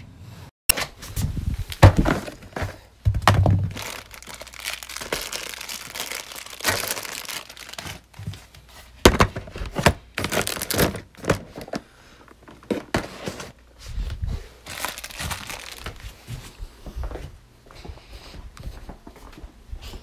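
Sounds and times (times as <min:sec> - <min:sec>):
plastic bags crinkling: 0:01.7 - 0:13.4, 0:14.6 - 0:16.2
plastic bin thunking down: 0:01.8 - 0:03.8, 0:09.0 - 0:11.8.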